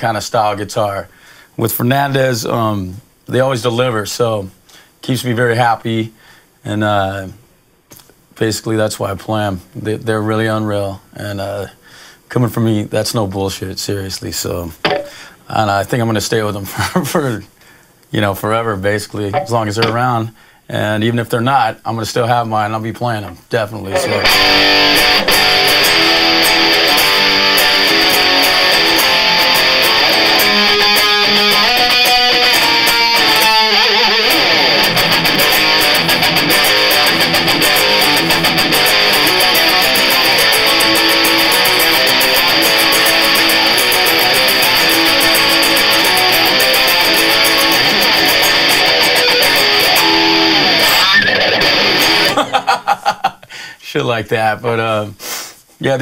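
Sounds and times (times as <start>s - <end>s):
distorted electric guitar: 23.9s - 52.6s.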